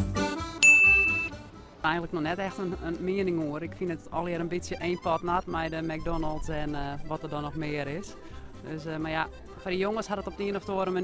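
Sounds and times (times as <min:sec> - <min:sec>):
background music: 0:00.0 - 0:11.0
high bell-like ding: 0:00.6 - 0:01.4.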